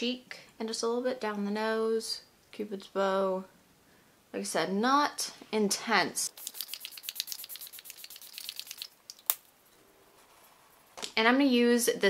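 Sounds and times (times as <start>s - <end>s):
spray bottle hissing bursts: 6.3s - 9.0s.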